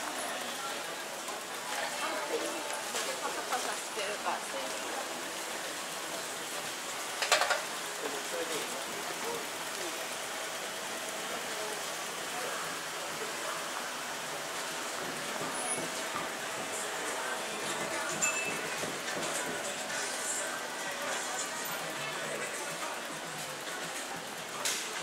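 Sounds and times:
faint voices of shoppers: 0.0s - 25.0s.

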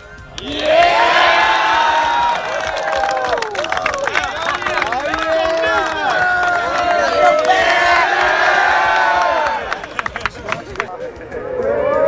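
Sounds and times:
crowd cheering and yelling: 0.3s - 12.0s.

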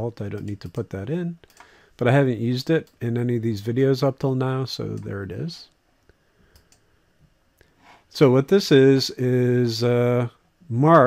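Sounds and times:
faint computer mouse clicks: 6.5s - 6.8s.

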